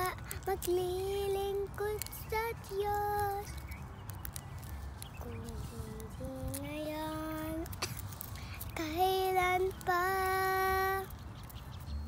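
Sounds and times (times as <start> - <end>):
girl singing long held notes: 0.0 - 3.6, 5.2 - 7.8, 8.4 - 11.1.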